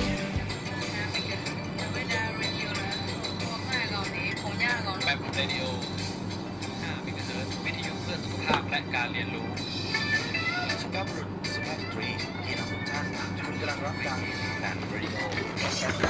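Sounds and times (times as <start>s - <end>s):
loud music: 0.0s - 4.0s, 9.6s - 16.0s
faint background music: 0.0s - 16.0s
steady low hum: 0.0s - 16.0s.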